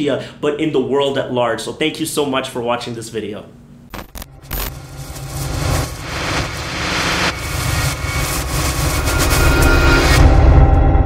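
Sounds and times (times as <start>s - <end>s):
deep rumble: 4.0s - 11.0s
sweeping whooshes: 4.3s - 10.2s.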